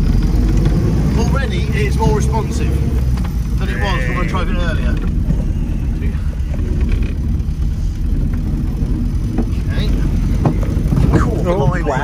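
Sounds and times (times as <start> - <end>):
car engine low drone: 0.0 - 12.0.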